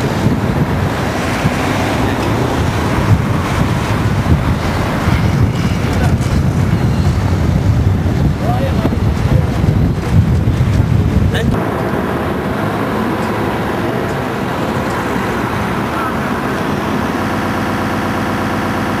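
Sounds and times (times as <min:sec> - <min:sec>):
street traffic: 0:00.0 - 0:19.0
wind buffeting microphone: 0:00.0 - 0:19.0.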